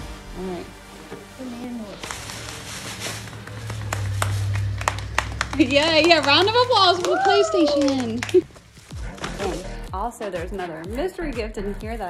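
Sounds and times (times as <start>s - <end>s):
light applause: 3.3s - 8.6s.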